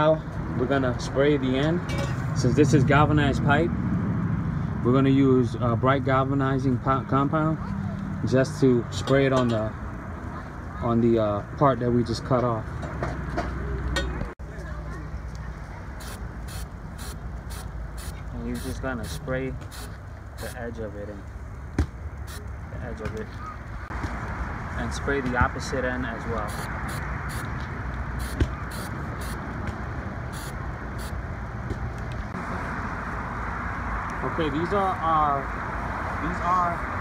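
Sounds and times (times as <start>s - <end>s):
spray can hissing: 16.0s - 20.6s, 26.4s - 27.5s, 28.2s - 29.4s, 30.4s - 31.2s.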